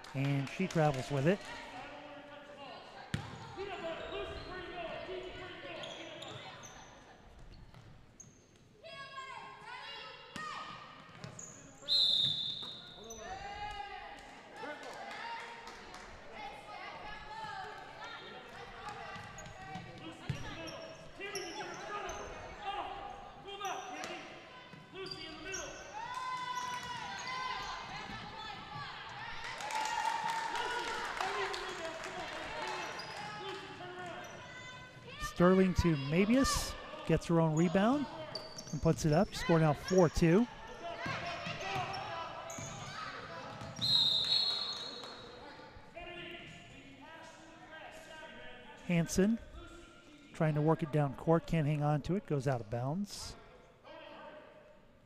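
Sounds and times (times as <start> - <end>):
voices in echoing gym: 0.0 - 55.0
loud whistle blast: 43.8 - 44.9.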